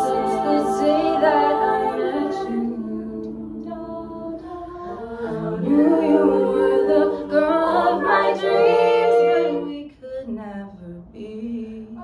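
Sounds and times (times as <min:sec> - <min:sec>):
backing vocal harmonies: 0:00.0 - 0:12.0.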